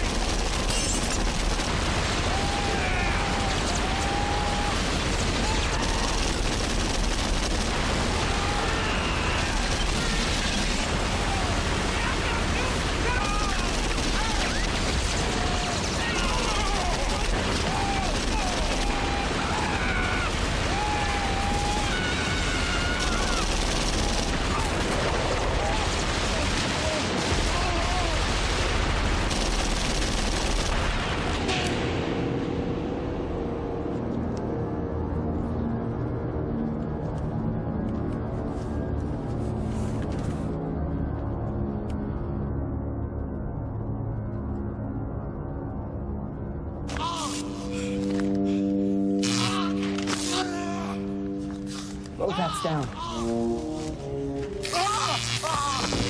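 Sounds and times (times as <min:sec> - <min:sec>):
automatic gunfire: 0:05.6 - 0:07.8, 0:13.2 - 0:15.1, 0:29.3 - 0:30.8
voices yelling: 0:08.0 - 0:28.3, 0:54.6 - 0:56.0.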